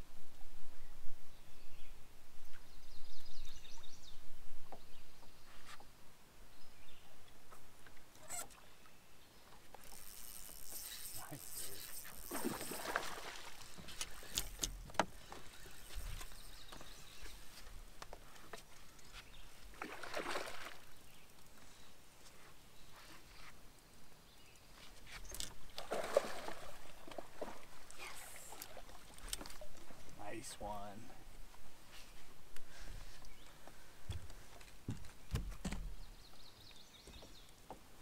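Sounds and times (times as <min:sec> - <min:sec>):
water splashing beside a boat: 0:09.6 - 0:21.1, 0:25.5 - 0:30.5.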